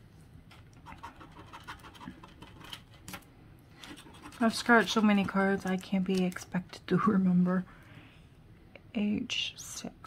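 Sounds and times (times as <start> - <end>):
scratching lottery ticket: 0.8 - 3.0, 3.8 - 6.4.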